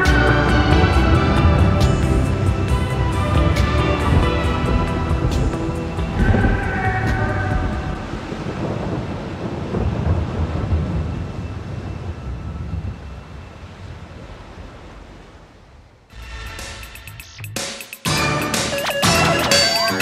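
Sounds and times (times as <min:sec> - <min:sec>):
held synth chord: 0:00.0 - 0:08.0
low rumbling wash of noise: 0:00.0 - 0:17.2.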